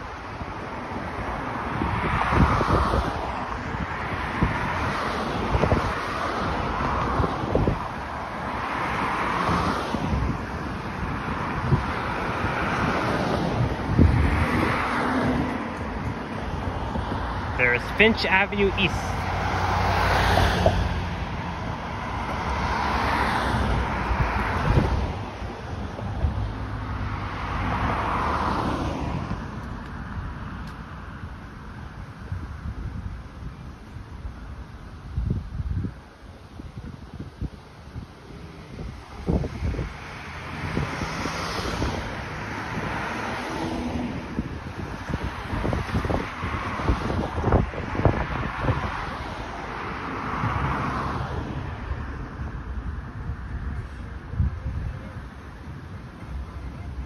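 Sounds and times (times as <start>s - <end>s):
cars passing: 0.0s - 57.0s
wind buffeting microphone: 0.0s - 57.0s.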